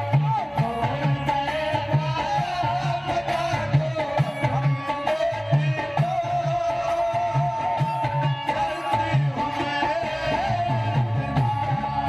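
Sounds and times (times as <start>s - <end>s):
harmonium melody: 0.0s - 12.0s.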